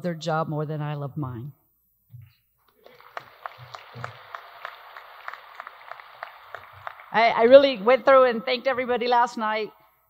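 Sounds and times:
audience applauding: 2.7 - 7.8.

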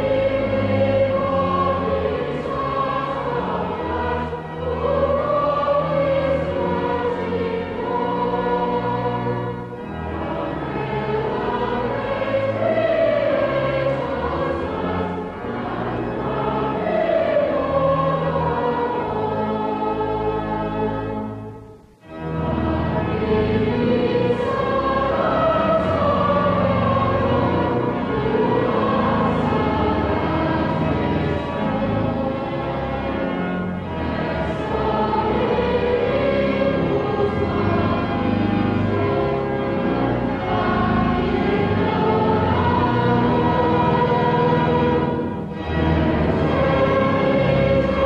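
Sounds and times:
choir singing sacred music: 0.0 - 48.0.

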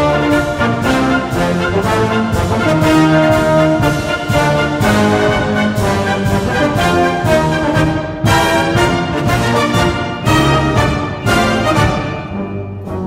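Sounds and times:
wind band playing a march: 0.0 - 13.0.

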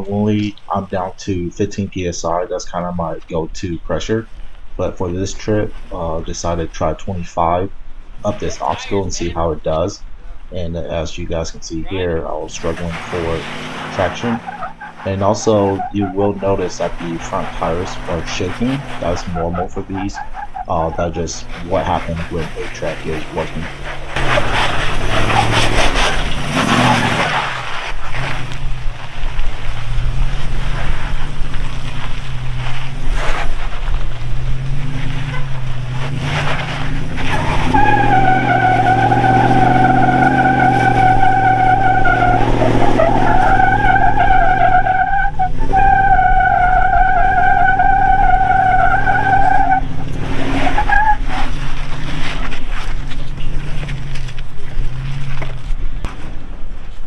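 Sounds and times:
tires scrabbling on rock: 0.0 - 57.0
high-pitched squeal: 10.6 - 28.3, 34.6 - 51.4.

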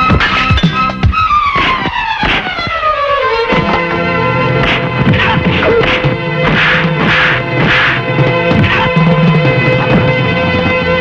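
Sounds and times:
punch sound effects: 4.6 - 9.1.

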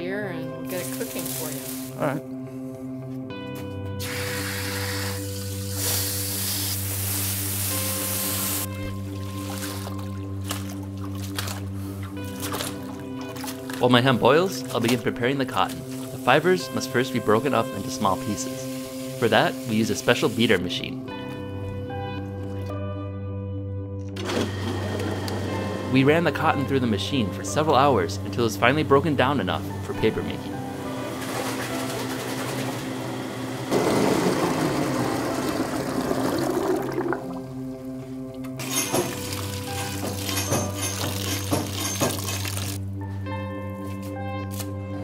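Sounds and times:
background music: 0.0 - 45.0
hose water spraying into pot: 0.7 - 2.0, 4.0 - 10.2, 15.5 - 20.8, 38.6 - 42.8
beater machine churning water: 30.9 - 37.6.

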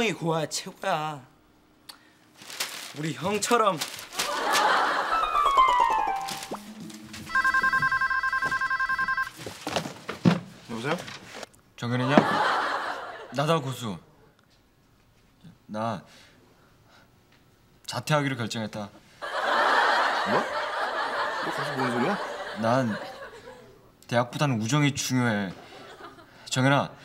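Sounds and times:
audience laughter: 4.2 - 6.1, 12.0 - 13.4, 19.2 - 23.8
telephone ringer warbling: 7.3 - 9.3.

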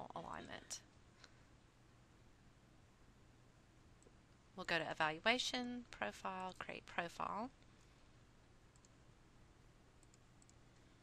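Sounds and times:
computer mouse clicks: 8.7 - 9.0, 10.0 - 10.9.

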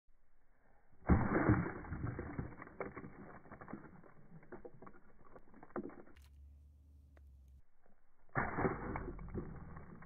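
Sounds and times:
fragments clicking on concrete: 1.4 - 6.3, 8.5 - 10.0
hammer blow crunching gingerbread: 8.3 - 10.0.

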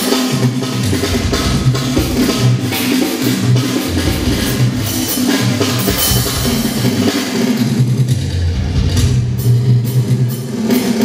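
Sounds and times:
drum kit beat: 0.0 - 11.0
bass notes: 0.8 - 7.1, 8.1 - 9.6.

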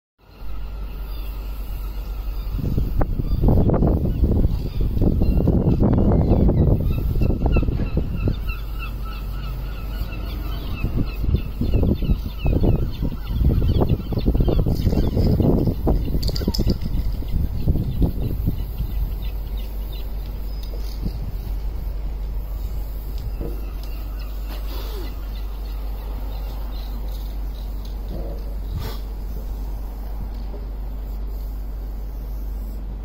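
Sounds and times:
gusting low rumble: 0.4 - 33.0
short repeated bird calls: 22.5 - 27.9.

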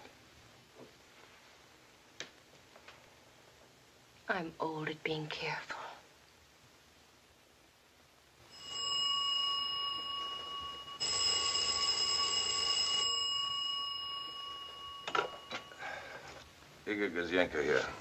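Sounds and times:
telephone bell ringing: 8.5 - 16.4.

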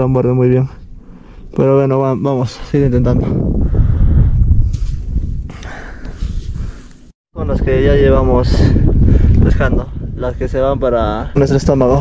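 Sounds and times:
wind buffeting microphone: 2.4 - 12.0.

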